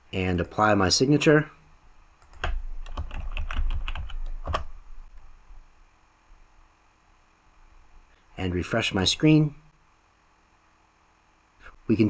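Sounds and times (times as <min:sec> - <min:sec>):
keyboard typing: 0:02.2 - 0:04.8.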